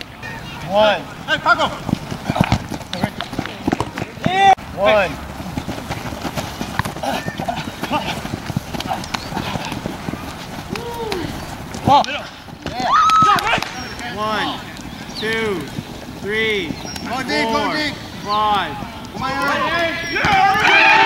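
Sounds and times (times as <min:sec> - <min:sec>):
players shouting: 0:00.0 - 0:21.0
thuds and clicks on grass: 0:01.5 - 0:04.5, 0:05.3 - 0:14.1, 0:19.0 - 0:20.9.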